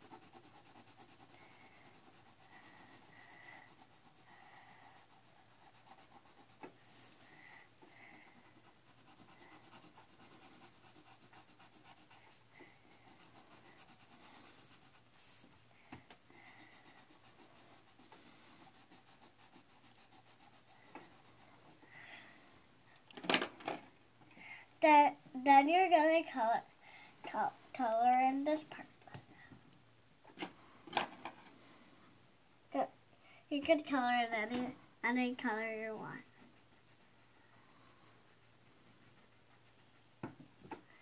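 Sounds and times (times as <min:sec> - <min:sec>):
pencil scratching on paper: 0:00.0 - 0:15.5, 0:16.4 - 0:21.8, 0:35.4 - 0:40.9.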